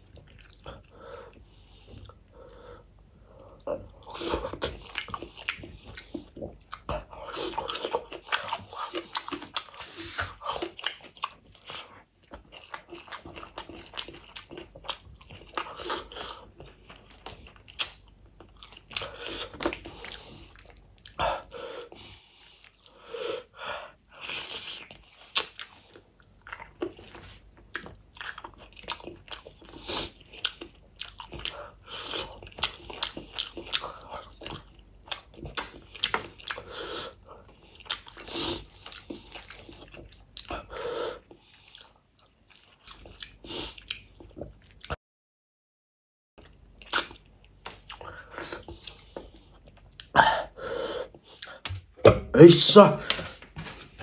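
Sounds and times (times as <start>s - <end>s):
wet chewing: 0.0s - 2.6s, 3.4s - 23.0s, 24.3s - 40.7s
lip smacks: 46.9s - 49.3s.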